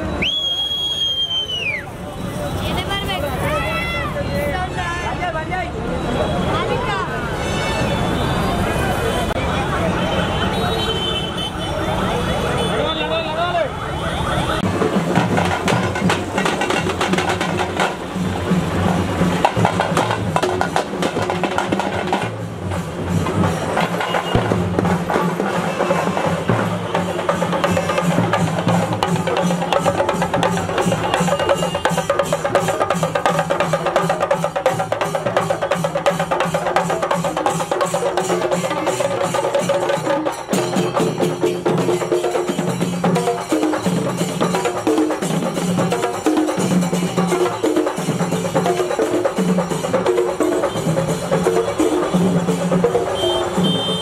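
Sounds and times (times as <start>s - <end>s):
loud fast drumming: 14.6s - 54.0s.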